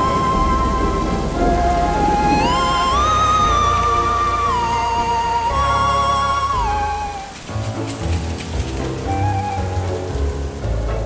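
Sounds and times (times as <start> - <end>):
background music: 0.0 - 11.0
steady rain hiss: 0.0 - 11.0.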